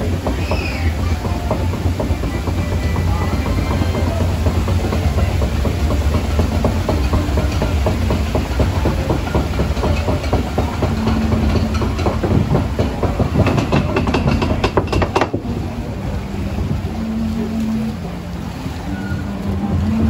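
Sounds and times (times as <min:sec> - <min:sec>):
lift conveyor clattering: 0:00.0 - 0:17.2
steady low rumble: 0:00.0 - 0:20.0.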